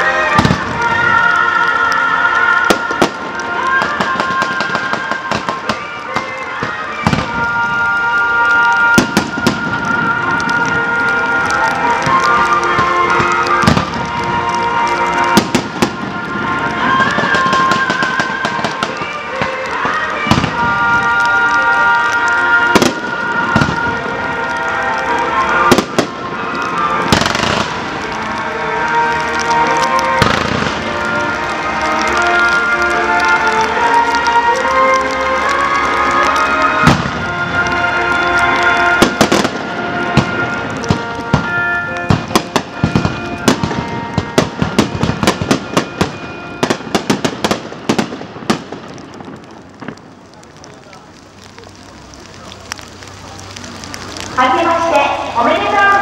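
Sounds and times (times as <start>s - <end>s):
music playing: 0.0s - 50.0s, 51.4s - 56.0s
fireworks bursting: 0.0s - 56.0s.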